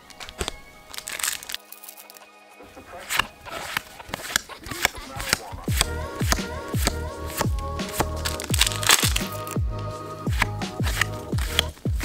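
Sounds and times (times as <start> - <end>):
foil packs crinkling: 0.0 - 2.3, 6.8 - 9.6, 10.3 - 12.0
trading cards being shuffled: 0.0 - 2.3, 2.9 - 9.6, 10.3 - 12.0
background music: 0.0 - 12.0.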